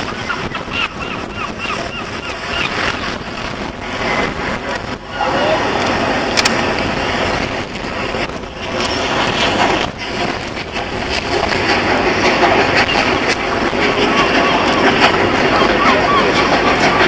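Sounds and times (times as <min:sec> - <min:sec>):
steam locomotive rushing: 0:00.0 - 0:17.0
wind on microphone: 0:00.0 - 0:17.0.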